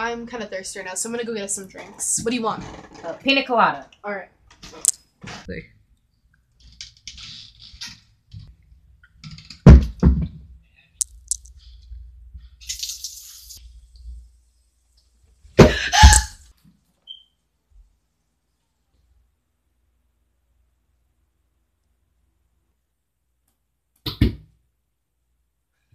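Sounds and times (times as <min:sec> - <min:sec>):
loud thumps: 0:09.6 - 0:10.5.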